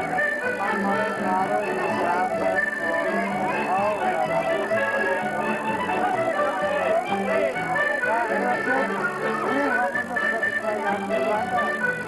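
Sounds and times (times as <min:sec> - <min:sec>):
crowd talking: 0:00.0 - 0:12.0
live band playing dance music: 0:00.0 - 0:12.0.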